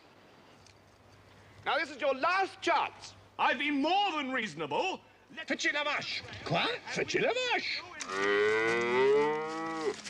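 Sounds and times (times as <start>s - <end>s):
cow mooing: 8.0s - 10.0s.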